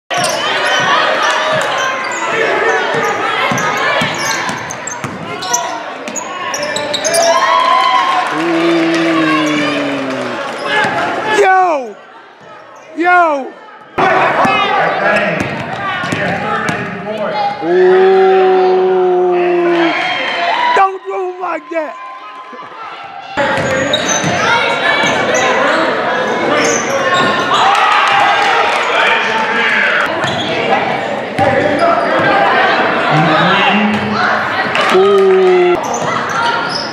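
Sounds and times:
spectators voices and shouts: 0.1s - 36.9s
long held shout: 7.4s - 10.5s.

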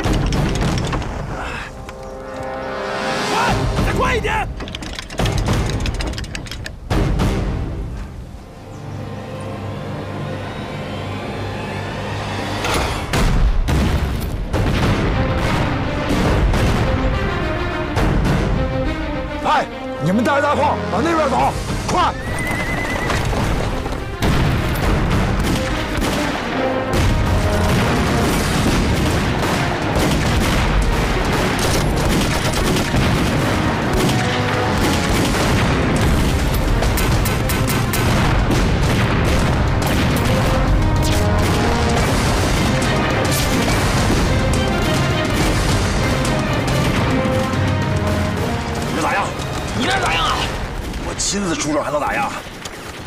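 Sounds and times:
gunshots and explosions: 0.0s - 1.8s, 12.6s - 19.0s, 21.5s - 53.0s
dramatic music: 0.0s - 52.3s
horse whinnying: 22.0s - 23.5s.

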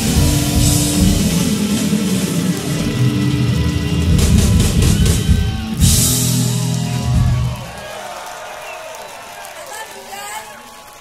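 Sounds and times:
live rock band playing: 0.0s - 7.8s
overdriven electric guitar: 0.0s - 7.8s.

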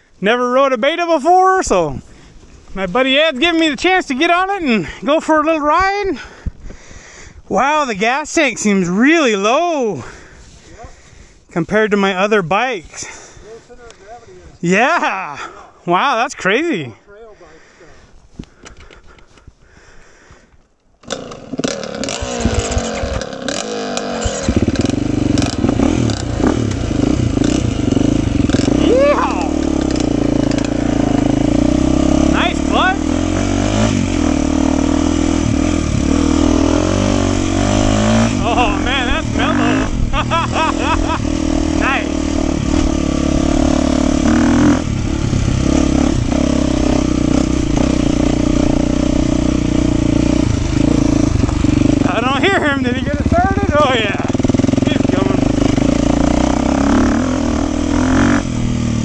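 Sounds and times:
dirt bike engine revving: 21.0s - 59.0s.

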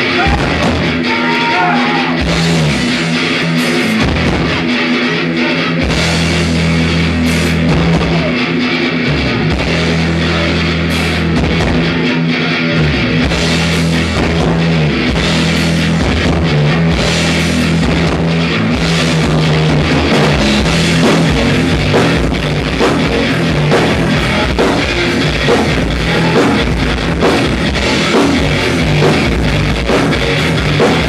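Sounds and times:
electric guitar riffing: 0.0s - 31.0s
pounding drum kit: 0.0s - 31.0s
thrash band playing: 0.0s - 31.0s.

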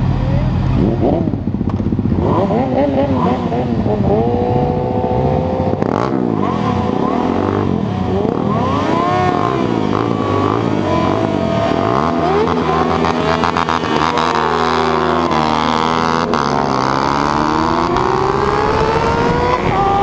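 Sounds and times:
motorcycle engines revving: 0.0s - 20.0s.

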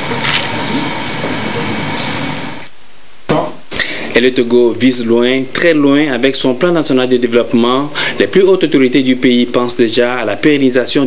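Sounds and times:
background hiss: 2.6s - 11.0s
man speaking: 3.3s - 11.0s.

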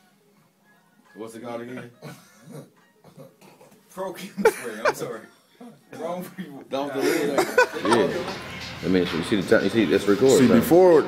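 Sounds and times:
people chuckling quietly: 1.7s - 5.2s.

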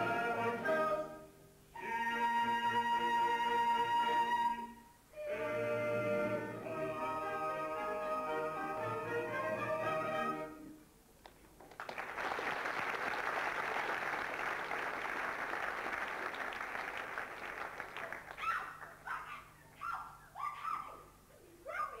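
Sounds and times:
audience applauding: 11.3s - 19.0s
short high vocal cries: 18.3s - 22.0s.

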